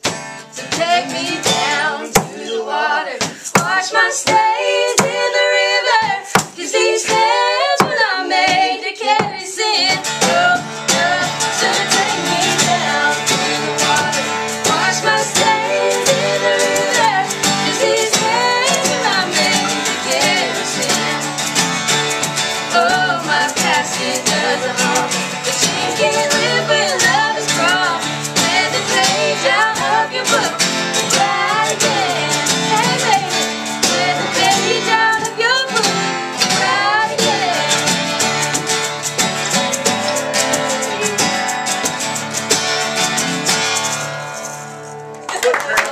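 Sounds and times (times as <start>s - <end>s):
acoustic guitars strummed: 0.0s - 45.4s
voices singing: 0.6s - 42.4s.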